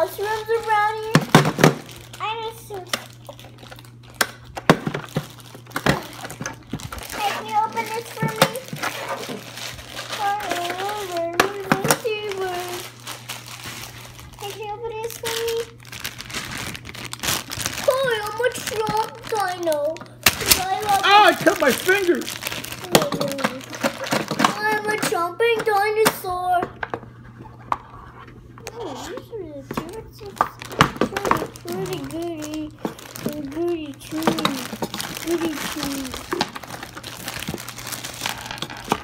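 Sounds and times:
child talking: 0.0 - 1.4, 2.0 - 3.3, 7.0 - 13.0, 14.4 - 15.8, 17.7 - 26.8, 28.6 - 36.5
plastic bags crinkling: 0.0 - 25.2, 29.8 - 39.0
plastic knocks: 29.7 - 31.6.

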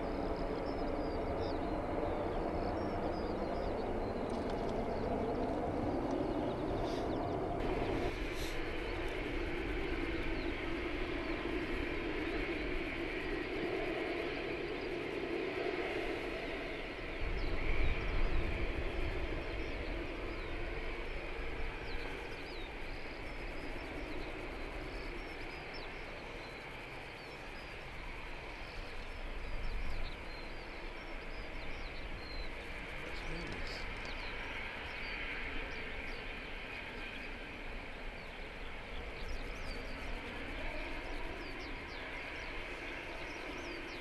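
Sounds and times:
jet engine roar: 0.0 - 44.0
wind rumble on microphone: 0.0 - 44.0.

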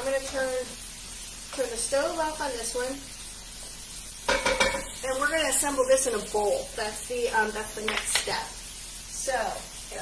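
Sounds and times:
vegetables sizzling in a frying pan: 0.0 - 10.0.

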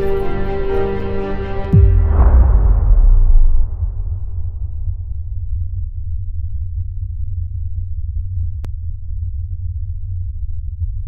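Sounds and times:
deep bass drone: 1.5 - 11.0.

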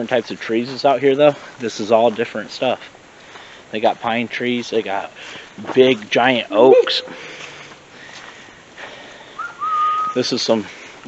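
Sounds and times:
faint hiss: 0.0 - 11.0
thin whistle: 6.6 - 7.4, 9.4 - 10.2.

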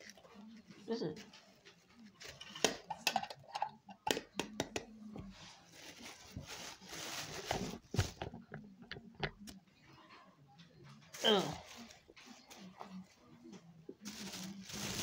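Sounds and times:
plastic bag rustling and crinkling: 5.3 - 8.6, 11.1 - 13.2, 14.0 - 15.0.

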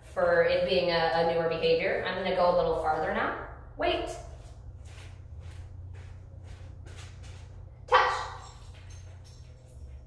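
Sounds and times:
faint footsteps: 4.2 - 10.0.

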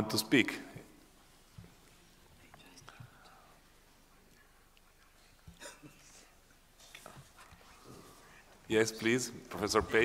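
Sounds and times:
faint whispering: 1.9 - 8.7.

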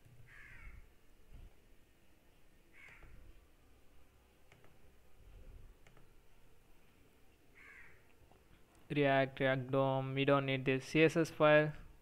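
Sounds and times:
faint clicks: 4.5 - 4.8, 5.8 - 6.2.

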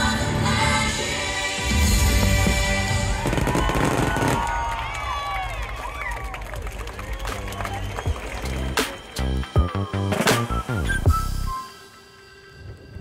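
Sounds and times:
soundtrack music: 0.0 - 4.4, 6.4 - 13.0
fireworks crackling: 1.7 - 9.2
fireworks whistles: 1.8 - 4.6, 10.1 - 12.8.

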